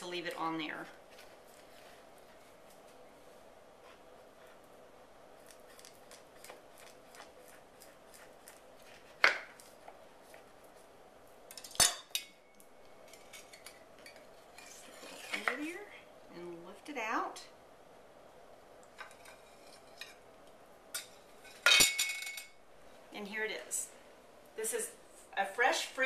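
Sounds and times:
knife cutting tart crust: 5.4s - 10.5s.

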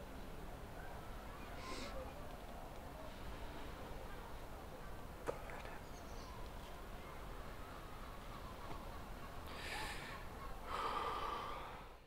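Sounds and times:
man breathing out heavily: 9.5s - 12.0s.

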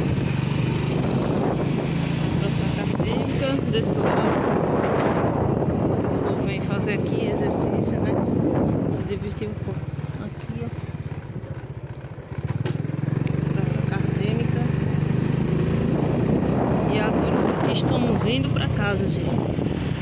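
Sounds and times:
motorcycle engine running: 0.0s - 20.0s.

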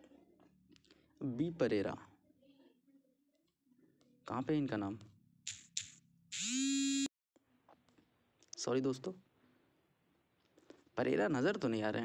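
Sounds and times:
phone vibration buzzing: 5.5s - 7.1s.

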